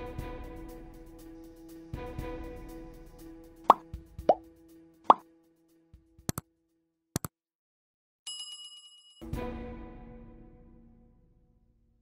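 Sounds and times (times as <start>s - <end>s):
background music held chord: 0.0s - 6.3s, 9.2s - 12.0s.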